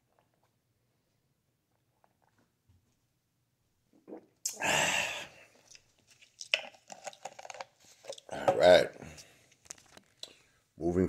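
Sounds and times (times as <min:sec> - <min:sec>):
man exhaling loudly: 0:04.5 - 0:05.4
plastic bottle clicks and rustles: 0:05.7 - 0:08.7.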